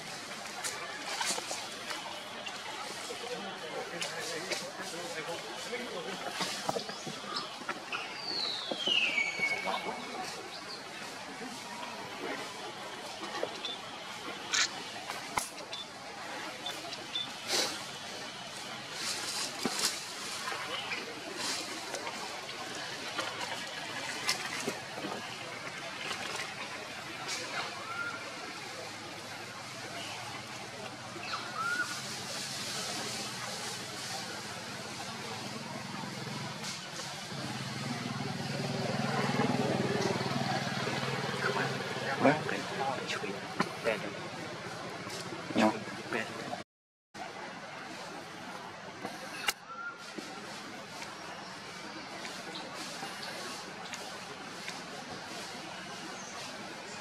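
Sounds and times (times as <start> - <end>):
distant people talking: 0.0 - 46.6.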